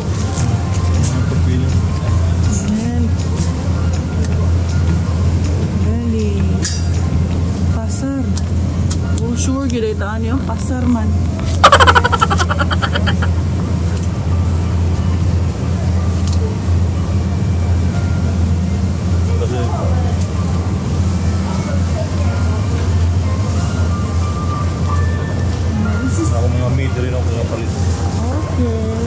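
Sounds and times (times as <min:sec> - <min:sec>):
faint voices: 0:09.3 - 0:14.2
burst of laughter: 0:11.6 - 0:13.4.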